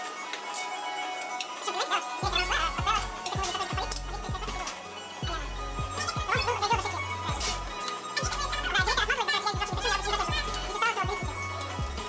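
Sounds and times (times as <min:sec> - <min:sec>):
music with bass-drum beat: 0:02.2 - 0:12.0.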